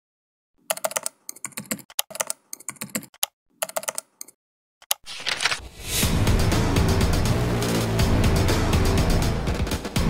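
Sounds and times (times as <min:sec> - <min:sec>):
computer keyboard typing: 0:00.6 - 0:05.6.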